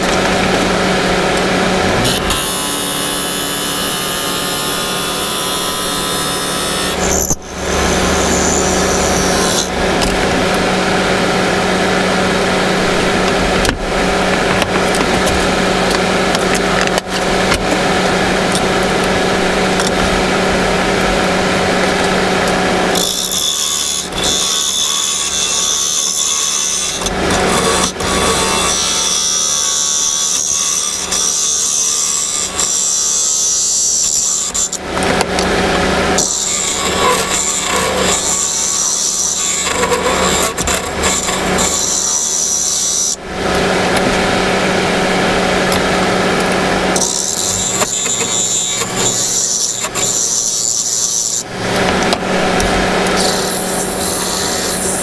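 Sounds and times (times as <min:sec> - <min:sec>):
wood lathe humming: 0:00.0 - 0:55.0
turning tool scraping wood: 0:34.4 - 0:44.2, 0:45.7 - 0:55.0.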